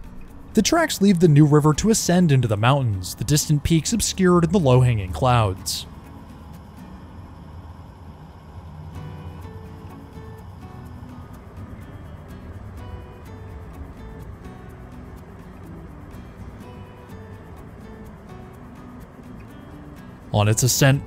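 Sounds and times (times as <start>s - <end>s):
background music with ticking beat: 0.0s - 7.4s, 9.0s - 21.0s
moving train rumbling: 1.6s - 20.5s.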